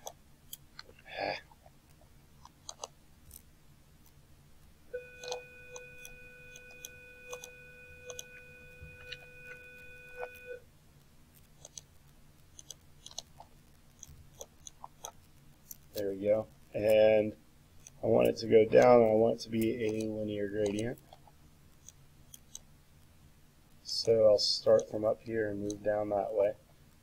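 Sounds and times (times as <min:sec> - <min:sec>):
computer mouse clicks: 0:02.4 - 0:03.4, 0:11.5 - 0:11.9, 0:19.6 - 0:21.2
steady electronic beep tone: 0:04.9 - 0:10.6.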